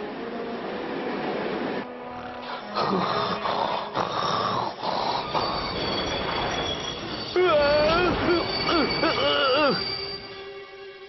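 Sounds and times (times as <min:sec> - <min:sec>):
cartoon snoring: 0:02.1 - 0:05.6
high wheel squeal: 0:04.8 - 0:10.6
train carriage running noise: 0:04.9 - 0:11.0.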